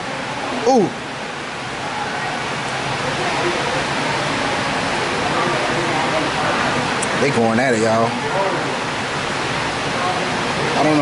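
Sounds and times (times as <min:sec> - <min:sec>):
faint voices: 0:00.0 - 0:11.0
steady rushing noise: 0:00.0 - 0:11.0.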